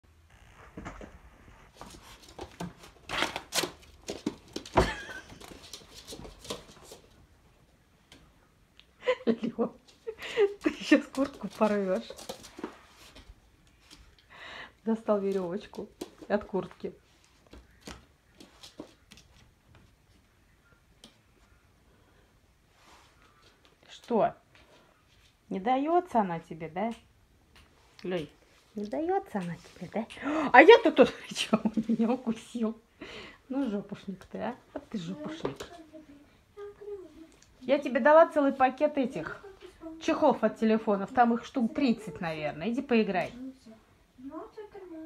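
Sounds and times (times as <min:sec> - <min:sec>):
raccoon pawing at floor: 0:00.8 - 0:07.3, 0:10.6 - 0:14.2.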